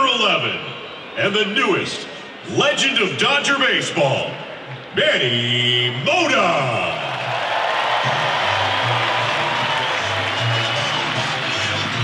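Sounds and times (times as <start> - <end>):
stadium crowd cheering: 0.0 - 12.0
music with bass line: 8.1 - 12.0.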